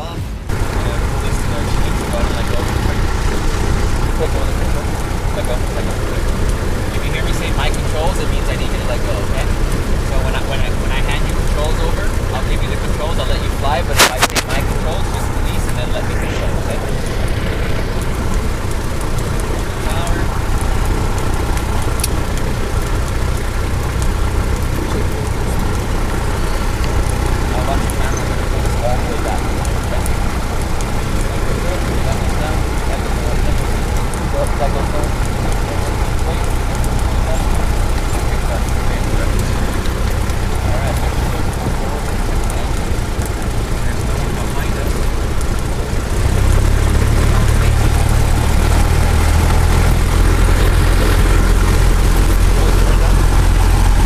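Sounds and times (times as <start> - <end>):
airplane engine and propeller drone: 0.0 - 54.0.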